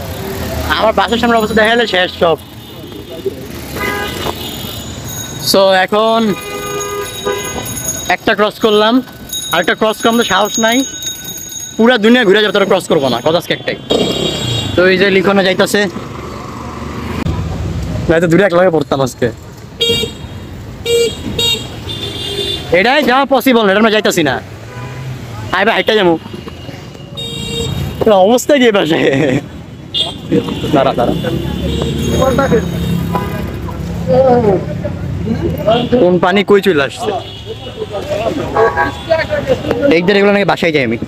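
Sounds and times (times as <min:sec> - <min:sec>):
street traffic noise: 0:00.0 - 0:41.0
vehicle horn toot: 0:02.6 - 0:04.9, 0:06.2 - 0:07.8, 0:13.1 - 0:14.8, 0:19.8 - 0:22.8, 0:24.7 - 0:25.2, 0:25.8 - 0:28.0, 0:29.9 - 0:33.5.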